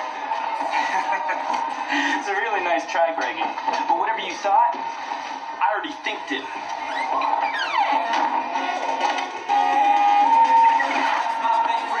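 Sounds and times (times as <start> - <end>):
film music from television: 0.0 - 12.0
voices over music: 9.5 - 12.0.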